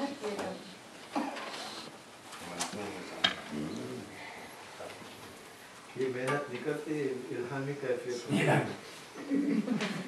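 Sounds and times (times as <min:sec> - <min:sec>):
murmuring voices: 0:02.6 - 0:05.2.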